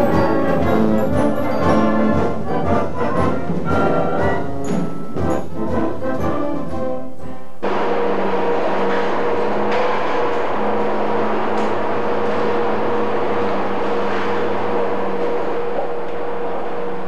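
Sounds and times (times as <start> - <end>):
factory machinery hum: 7.5 - 17.0.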